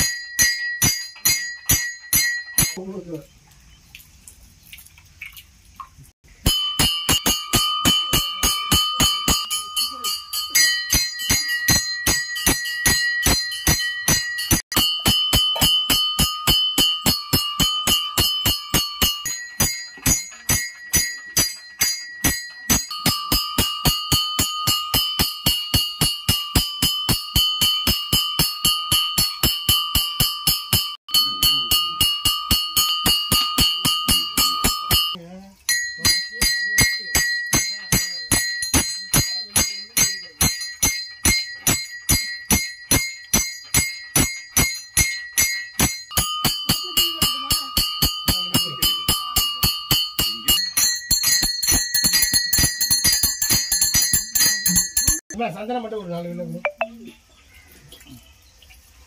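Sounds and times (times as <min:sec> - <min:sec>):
hand bell ringing rapidly: 0:00.0 - 0:02.8, 0:06.4 - 0:55.3.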